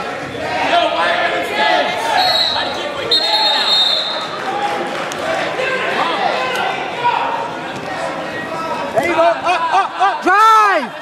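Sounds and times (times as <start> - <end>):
crowd voices talking and calling out: 0.0 - 11.0.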